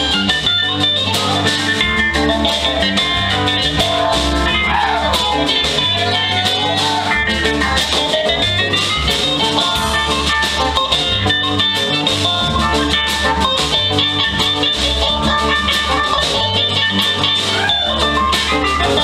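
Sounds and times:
bass guitar: 0.0 - 19.0
drum kit: 0.0 - 19.0
electric guitar: 0.0 - 19.0
keyboard: 0.0 - 19.0.

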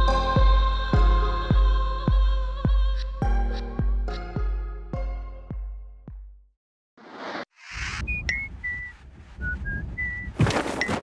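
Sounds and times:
whooshes: 7.0 - 10.4
whistle-like tones: 7.7 - 10.9.

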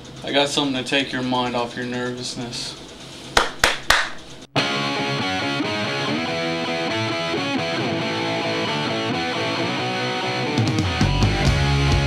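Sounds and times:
sharp hand claps: 3.4 - 4.3
distorted electric guitar music: 4.6 - 12.0.

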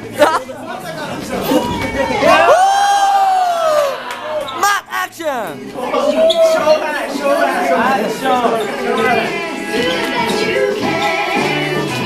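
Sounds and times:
long high shout: 2.2 - 4.9.

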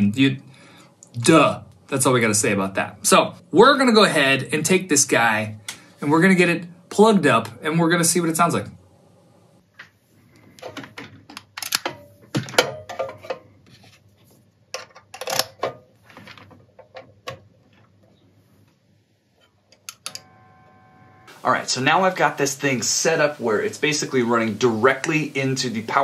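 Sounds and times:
cable plugs clicking and knocking: 10.6 - 13.4
steady electrical buzz: 19.9 - 26.0.

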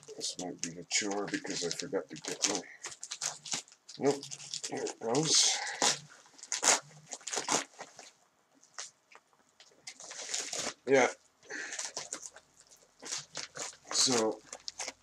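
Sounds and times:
packing material crinkling: 0.0 - 15.0
package tearing open: 0.3 - 8.1, 9.9 - 11.0, 11.6 - 15.0.

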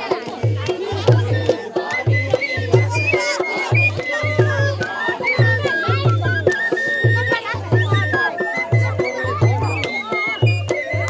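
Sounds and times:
heavy drum beat: 0.0 - 6.4
voices singing: 0.0 - 11.0.

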